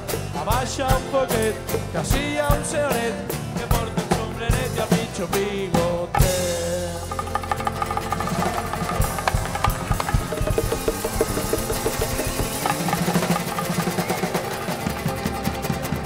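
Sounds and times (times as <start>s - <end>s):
live band music: 0.0s - 16.0s
rapid percussive hits: 6.1s - 16.0s.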